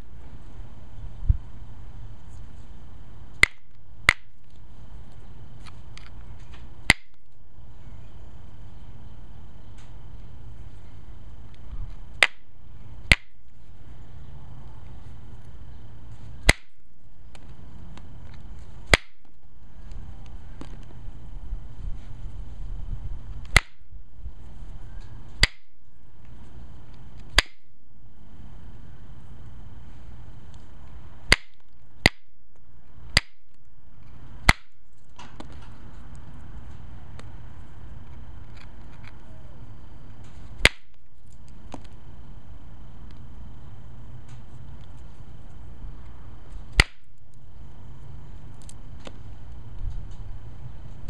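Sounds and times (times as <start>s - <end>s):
flint flakes snapping off: 16.4s - 19.3s, 23.4s - 23.8s, 27.2s - 27.6s, 46.7s - 47.3s.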